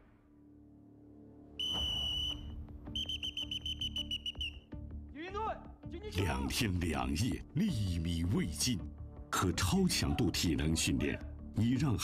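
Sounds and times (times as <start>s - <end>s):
whistle blasts: 1.6s - 4.6s.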